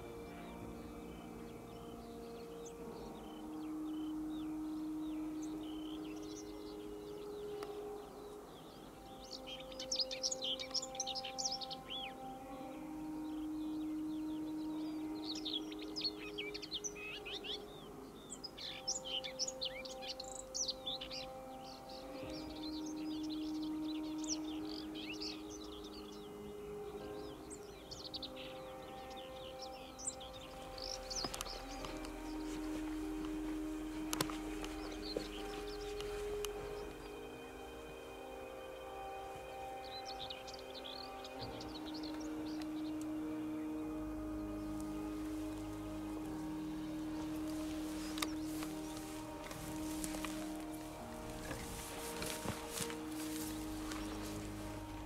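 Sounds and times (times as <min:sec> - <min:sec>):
small birds chirping: 0:00.0 - 0:55.0
soft music of held chords: 0:00.0 - 0:55.0.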